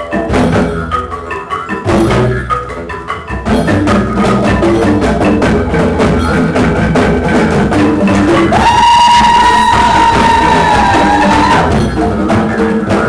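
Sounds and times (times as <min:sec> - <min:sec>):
bamboo tube drums knocking rhythm: 0:00.0 - 0:13.0.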